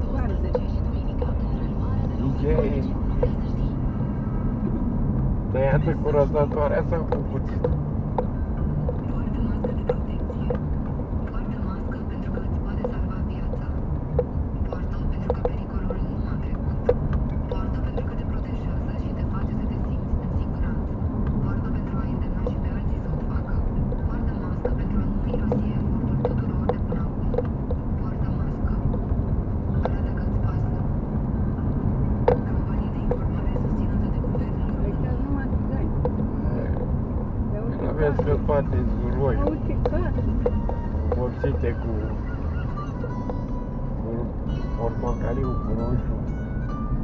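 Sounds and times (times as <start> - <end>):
car road and engine rumble: 0.0 - 47.0.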